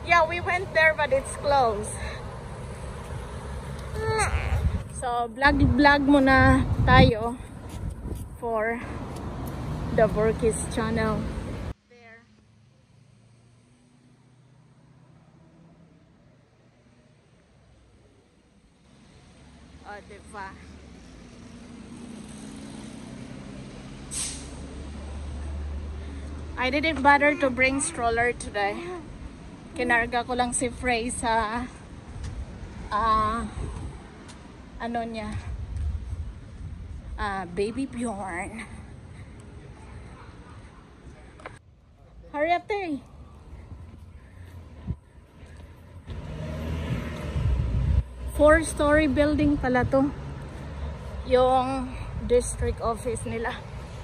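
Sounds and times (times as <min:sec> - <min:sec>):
vehicle passing by: 0:00.0 - 0:30.4, 0:43.0 - 0:54.0
street traffic: 0:00.0 - 0:54.0
short sharp hiss: 0:24.1 - 0:24.6.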